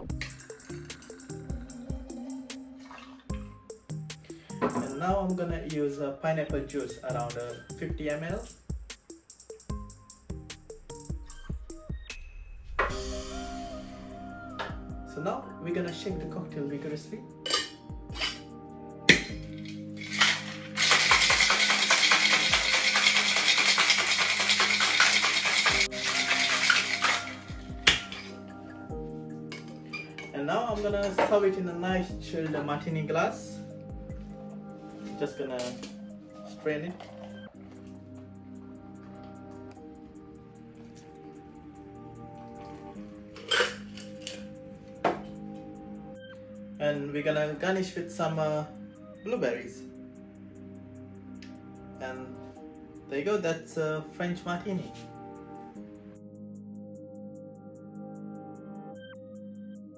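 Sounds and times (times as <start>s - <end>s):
soft background music: 0.0s - 59.9s
ice cubes rattling in shaker: 20.0s - 27.6s.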